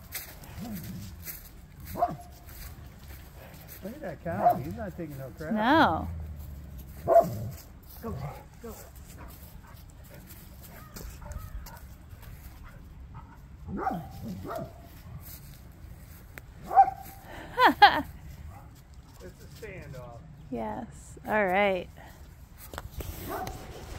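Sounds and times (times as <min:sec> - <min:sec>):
dog barking: 0:01.9 - 0:02.3, 0:04.3 - 0:04.8, 0:07.0 - 0:07.6, 0:09.2 - 0:11.9, 0:12.6 - 0:14.9, 0:16.6 - 0:17.2, 0:23.2 - 0:23.6.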